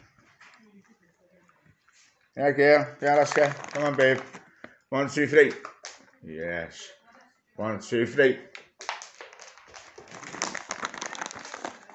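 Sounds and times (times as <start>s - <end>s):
dog claws clicking on floor: 8.5s - 11.9s.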